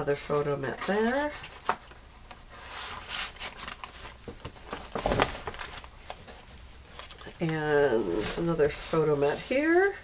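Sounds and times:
paper pages rustling: 0.7 - 10.0.

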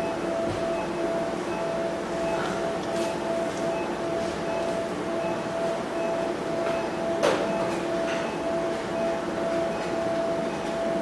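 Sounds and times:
equipment hum and hiss: 0.0 - 11.0
monitor beeping softly: 0.0 - 11.0.

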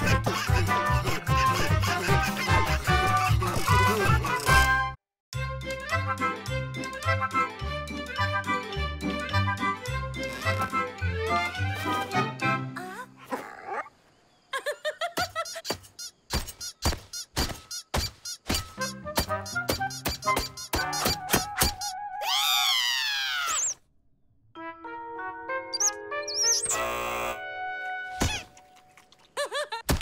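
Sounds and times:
cartoon taps and knocks: 15.7 - 22.0.

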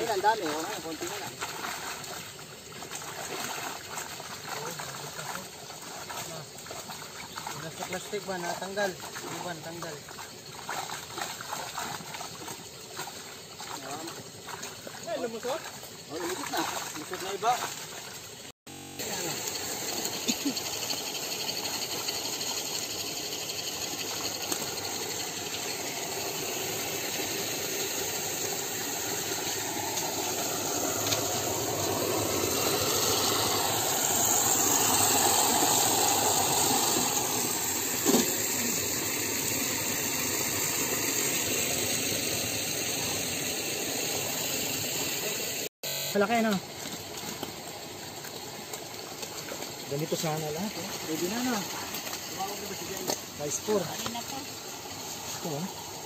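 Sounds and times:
water running into tank: 21.0 - 45.6.

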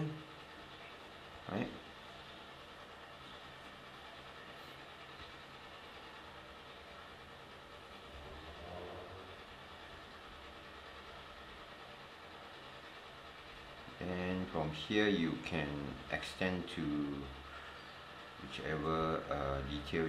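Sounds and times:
low room hum: 0.0 - 20.0.

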